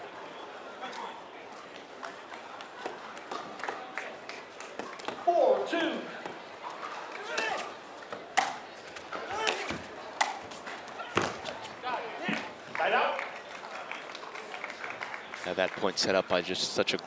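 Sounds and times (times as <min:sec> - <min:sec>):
paddles striking plastic ball: 0:08.1 - 0:08.6.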